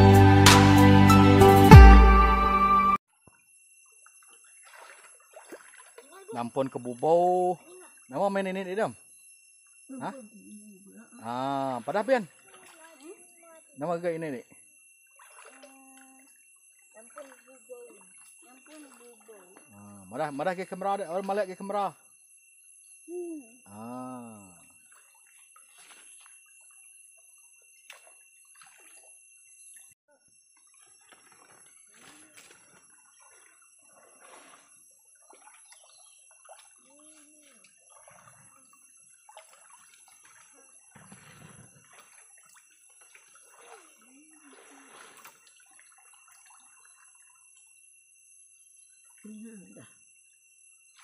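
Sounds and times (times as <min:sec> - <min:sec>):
stream water splashing: 0:03.9 - 0:08.9, 0:09.9 - 0:21.9, 0:24.6 - 0:47.8.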